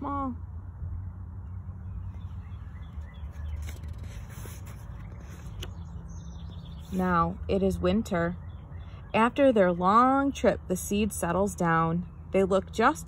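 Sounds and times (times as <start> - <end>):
book page turning: 3.0 - 7.0.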